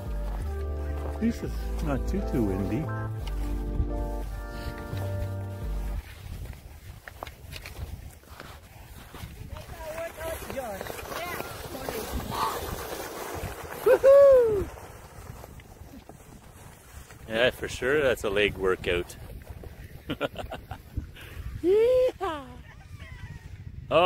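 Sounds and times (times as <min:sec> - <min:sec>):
wind buffeting microphone: 0:05.6 - 0:24.0.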